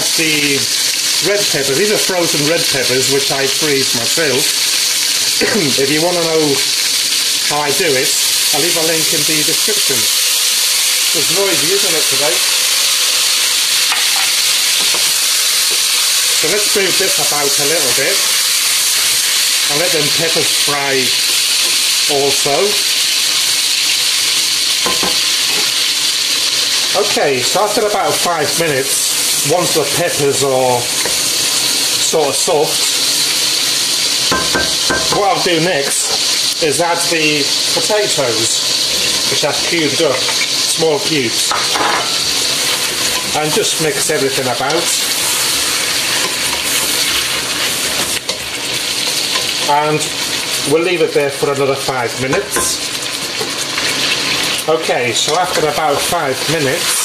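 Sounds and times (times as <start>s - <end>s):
meat sizzling in hot oil: 0.0s - 57.0s
wooden spoon stirring in pot: 42.5s - 50.5s.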